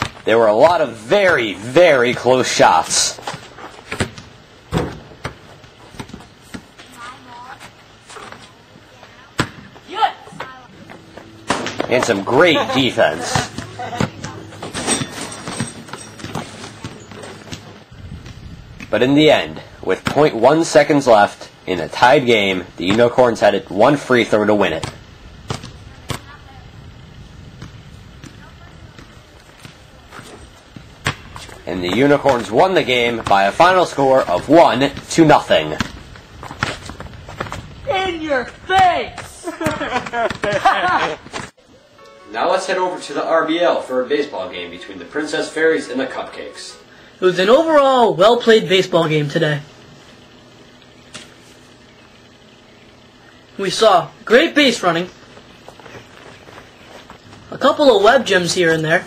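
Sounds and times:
basketball bouncing on driveway: 0.0s - 0.3s, 3.2s - 7.3s, 13.1s - 18.9s, 22.8s - 23.2s, 24.6s - 26.4s, 27.5s - 37.8s, 38.4s - 41.5s
players' voices: 0.2s - 4.2s, 6.7s - 17.8s, 31.6s - 36.0s, 37.8s - 49.8s
basketball thuds: 3.2s - 6.8s, 9.4s - 9.8s, 13.2s - 18.9s, 30.7s - 32.5s.

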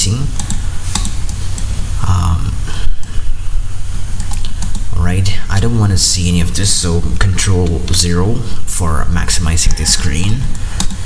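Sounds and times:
steady low hum: 0.0s - 11.0s
computer keyboard clicks: 0.4s - 1.2s, 10.5s - 11.0s.

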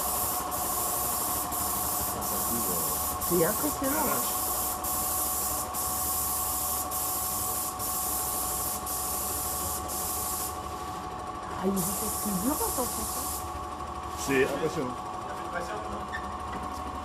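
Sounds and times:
spray gun hissing: 0.0s - 10.9s, 11.7s - 13.5s
steady machine hum: 0.0s - 17.0s.

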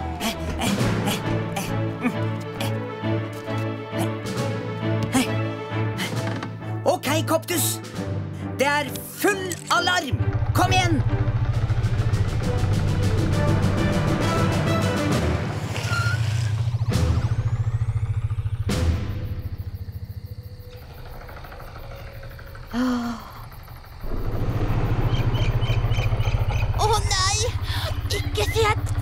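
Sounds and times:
music: 0.0s - 16.0s, 18.6s - 19.6s
helicopter rotor chopping: 8.9s - 29.0s.

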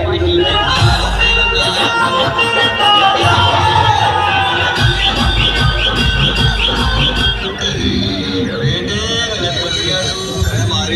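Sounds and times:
heavy deep bass: 0.0s - 2.6s, 3.2s - 8.8s
loud electronic dance music: 0.0s - 10.9s.

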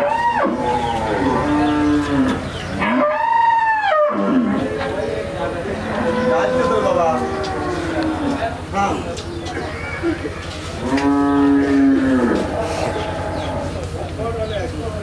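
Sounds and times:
cattle mooing: 0.0s - 8.6s, 10.8s - 13.8s.

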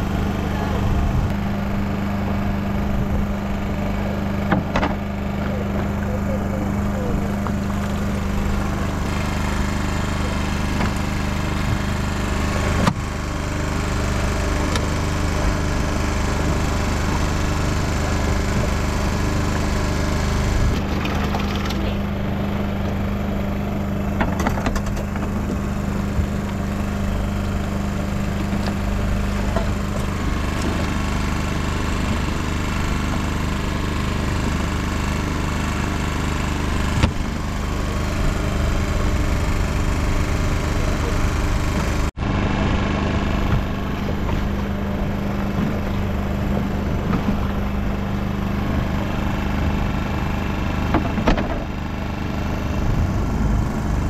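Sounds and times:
small boat engine humming: 0.0s - 54.0s
knocks on boat: 4.5s - 5.0s, 37.0s - 37.3s, 50.8s - 51.7s.

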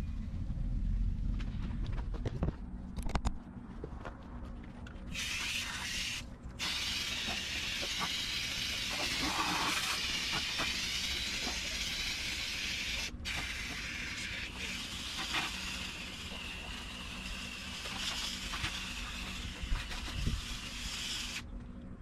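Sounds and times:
low rumble: 0.0s - 5.1s
hose water spraying: 5.1s - 21.4s.

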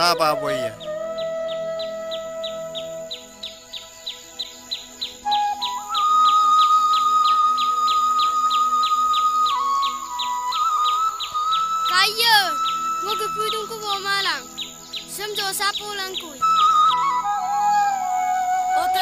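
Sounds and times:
rapid high chirping: 4.8s - 17.4s.

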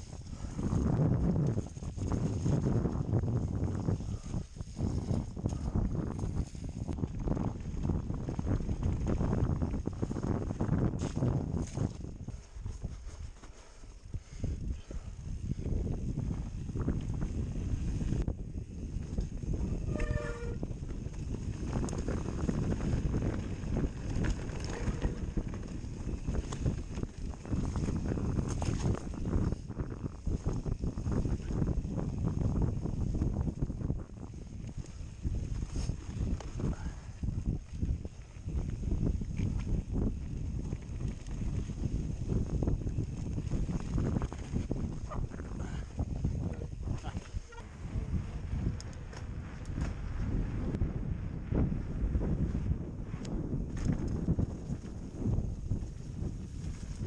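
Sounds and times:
bike rattling over bumps: 0.0s - 57.0s
bike tyre rumble: 0.0s - 57.0s
wind buffeting microphone: 0.0s - 57.0s.

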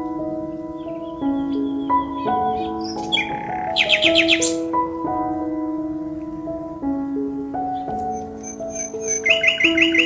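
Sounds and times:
soft background music: 0.0s - 10.0s
small bird chirping: 0.8s - 4.7s, 7.7s - 10.0s.

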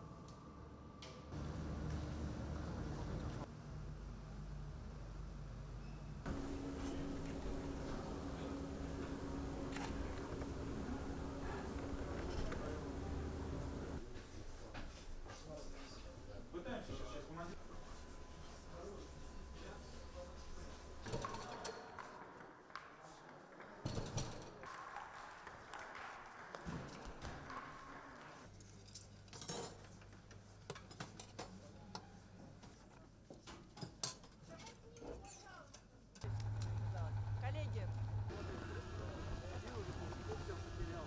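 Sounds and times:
steady low hum: 0.0s - 14.0s, 36.2s - 41.0s.

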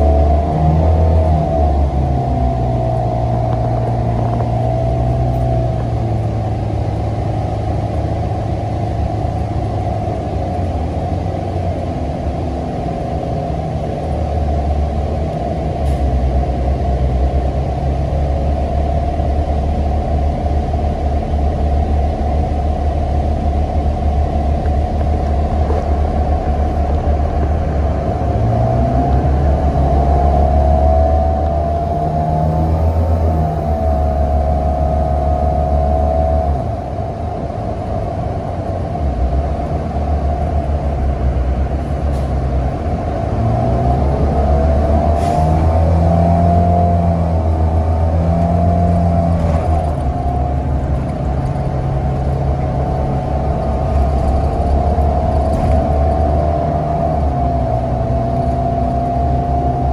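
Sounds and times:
bus engine drone: 0.0s - 59.9s
drivetrain whine: 0.0s - 59.9s.

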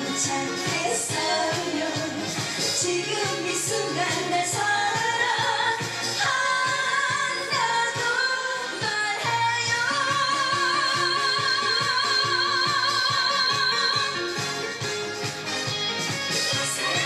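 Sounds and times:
woman singing into microphone: 0.0s - 14.4s, 16.5s - 17.0s
pop backing track with drum beat: 0.0s - 17.0s.

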